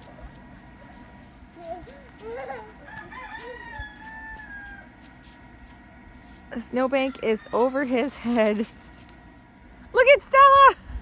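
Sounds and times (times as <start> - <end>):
rooster crowing: 2.8 - 5.1.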